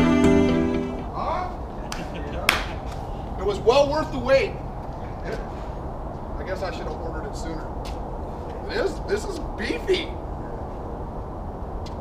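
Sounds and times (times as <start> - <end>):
loud sharp snap: 1.9 - 3.0.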